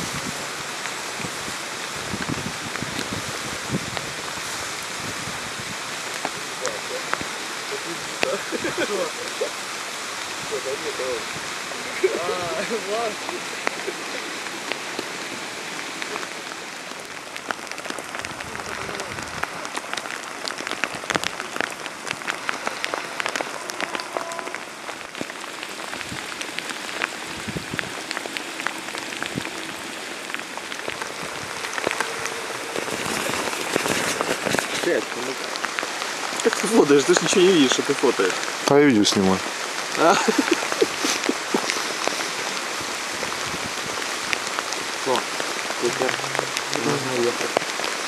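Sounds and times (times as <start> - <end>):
raindrops ticking close by: 0.0 - 48.0
steady rain hiss: 0.0 - 48.0.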